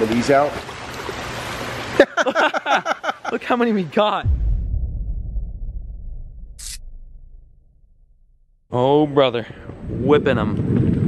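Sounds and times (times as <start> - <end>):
water pouring and splashing: 0.0 - 2.0.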